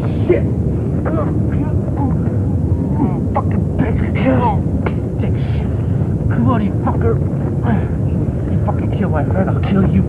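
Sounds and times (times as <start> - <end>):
constant deep rumble: 0.0 - 10.0.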